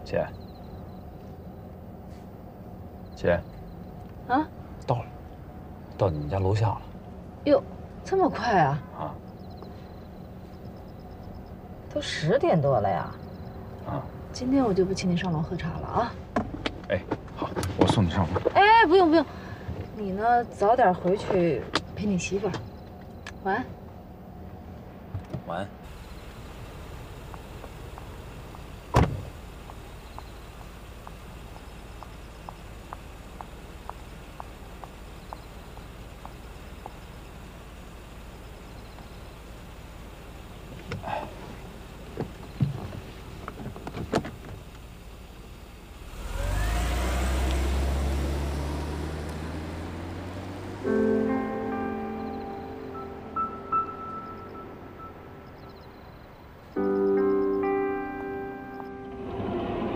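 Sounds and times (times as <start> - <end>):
car engine revving and driving off: 0.0 - 59.9
car door shutting: 27.9 - 30.3, 40.7 - 44.7
soft piano and bell music: 50.9 - 55.5, 56.8 - 59.0
steady low rumble: 58.7 - 59.9.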